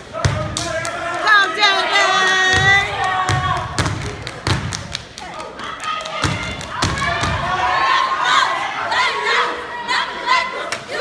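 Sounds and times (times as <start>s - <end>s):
people clapping: 0.4s - 7.6s
people shouting: 5.5s - 11.0s.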